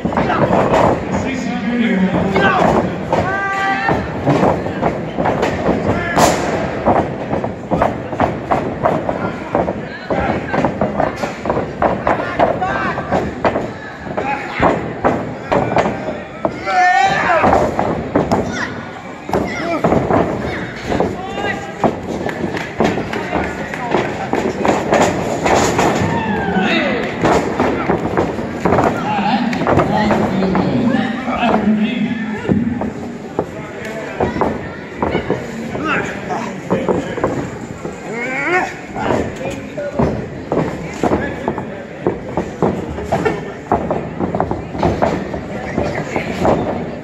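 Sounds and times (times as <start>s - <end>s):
indistinct crowd voices: 0.0s - 47.0s
crowd shouting: 26.0s - 27.2s.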